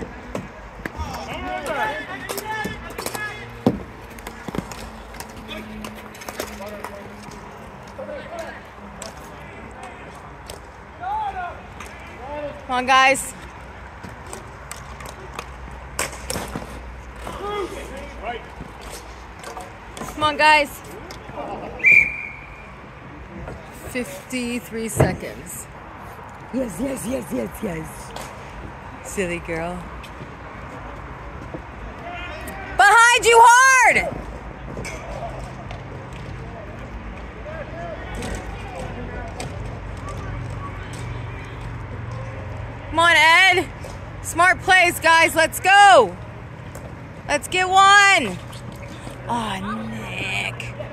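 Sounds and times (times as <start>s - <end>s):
hockey sticks clacking: 0.3s - 10.8s, 14.0s - 21.2s
distant players shouting: 31.9s - 34.3s.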